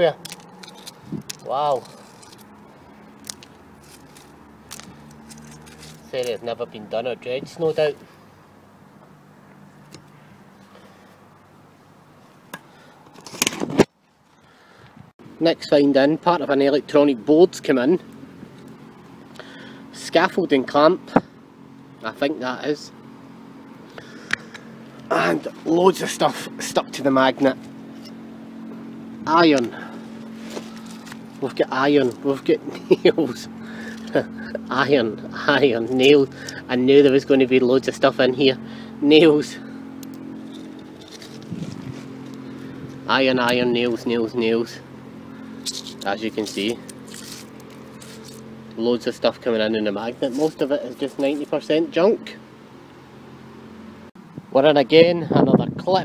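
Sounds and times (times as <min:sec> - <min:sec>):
metallic rattling and scraping: 0:00.0 - 0:06.6, 0:24.3 - 0:51.7
low background hum: 0:00.0 - 0:56.0.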